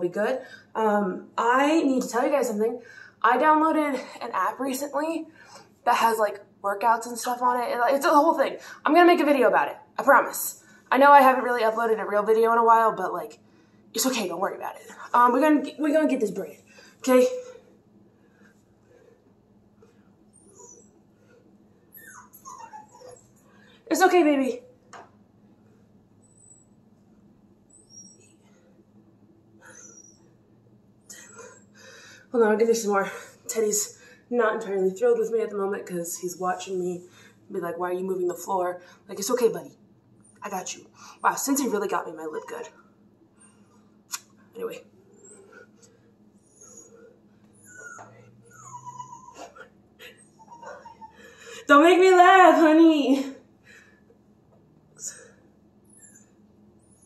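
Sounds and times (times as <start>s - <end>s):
dog whining: 20.3s - 23.4s, 26.2s - 26.8s, 27.7s - 28.5s, 29.6s - 30.4s, 45.0s - 45.8s, 46.4s - 51.3s, 55.1s - 57.0s.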